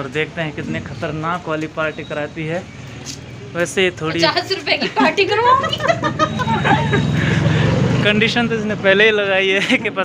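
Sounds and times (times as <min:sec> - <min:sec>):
voices: 0:00.0 - 0:10.0
vehicle engine droning: 0:05.4 - 0:10.0.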